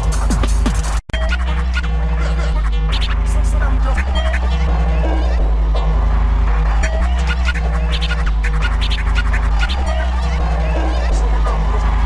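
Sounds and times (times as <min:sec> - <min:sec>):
pitched kick drum: 0:00.0 - 0:01.0
fast electronic dance music: 0:00.0 - 0:12.0.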